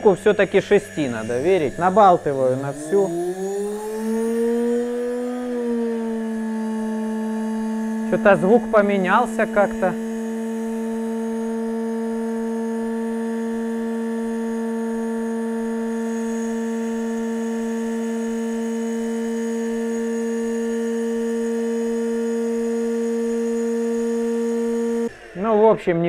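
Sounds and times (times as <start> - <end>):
electric motor humming: 0.0 - 26.0.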